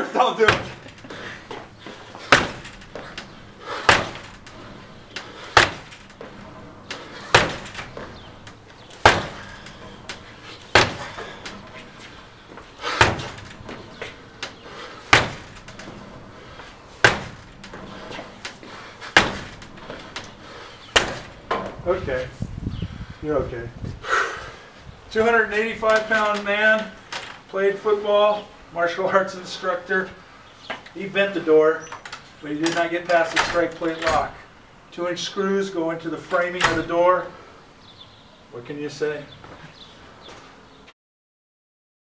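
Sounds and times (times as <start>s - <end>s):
door slamming against lock chain: 0.4s - 22.3s, 25.2s - 27.5s, 31.9s - 34.6s, 36.2s - 37.0s
door being kicked: 0.4s - 22.4s, 32.0s - 34.5s, 36.3s - 37.0s.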